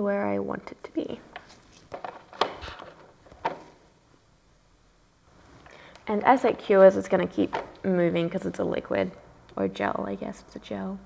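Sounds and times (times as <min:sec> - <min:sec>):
small items knocking on a table: 0:01.3 - 0:03.7.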